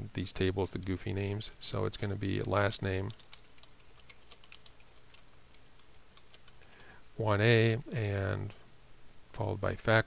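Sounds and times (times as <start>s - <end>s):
typing on computer keyboard: 3.0s - 6.9s.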